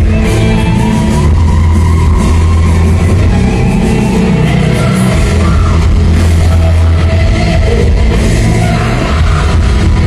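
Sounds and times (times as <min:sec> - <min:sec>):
live rock band through pa: 0:00.0 - 0:10.0.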